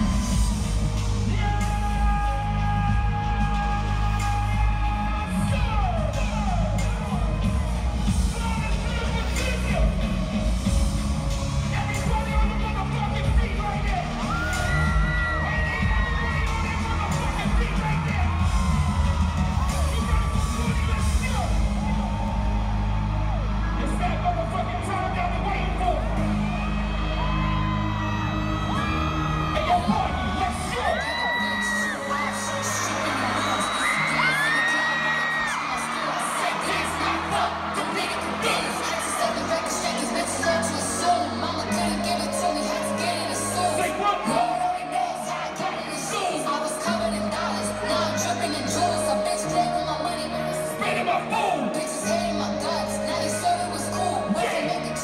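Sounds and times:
crowd whooping and screaming: 0.0s - 55.0s
live concert electronic music: 0.0s - 55.0s.

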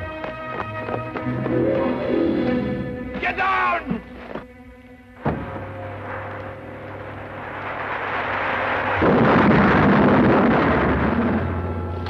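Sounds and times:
orchestral music: 0.0s - 8.7s
bomb explosion rumbling: 5.3s - 11.9s.

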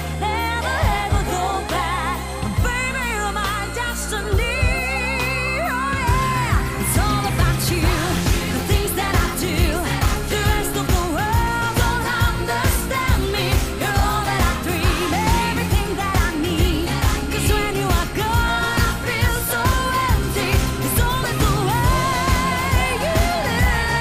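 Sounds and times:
bass: 0.0s - 24.0s
woman singing: 0.0s - 24.0s.

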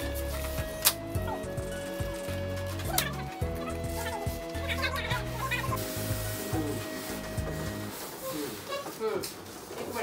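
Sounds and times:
polystyrene foam squeaking: 1.7s - 10.0s.

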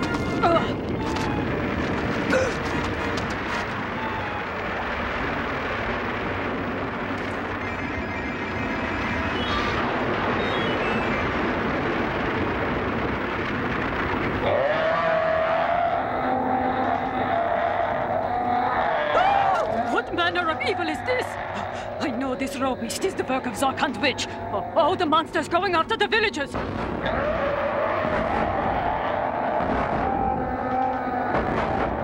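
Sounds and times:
cartoon rumbling: 0.0s - 25.5s, 26.6s - 32.0s.

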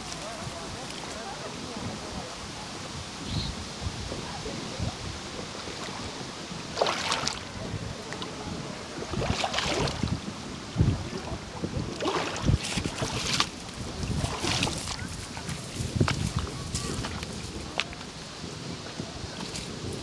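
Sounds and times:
wind noise on microphone: 0.0s - 20.0s
footsteps crunching through brush: 12.5s - 18.1s.

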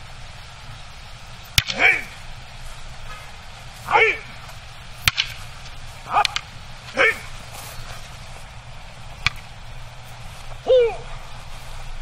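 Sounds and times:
wooden staff and sword clacking: 1.5s - 2.2s, 3.0s - 8.0s, 9.1s - 9.5s
short shout: 3.8s - 4.3s, 6.9s - 7.3s, 10.6s - 11.1s.

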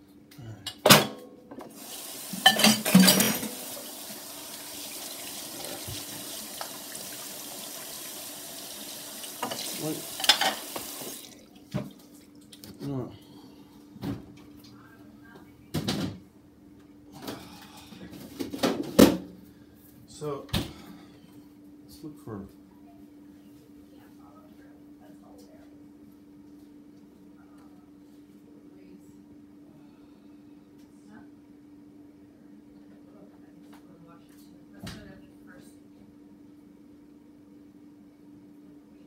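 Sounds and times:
water running from tap: 1.7s - 12.6s.

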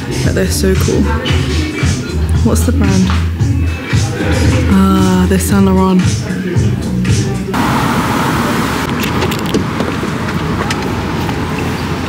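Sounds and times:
shop ambience: 0.0s - 12.0s
city street traffic: 6.4s - 12.0s
handling noise: 8.7s - 12.0s
car door opening clicks: 8.8s - 11.4s.

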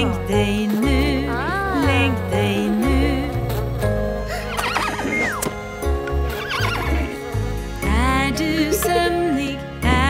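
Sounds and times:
children's song music: 0.0s - 10.0s
horse whinnying: 4.2s - 7.6s.

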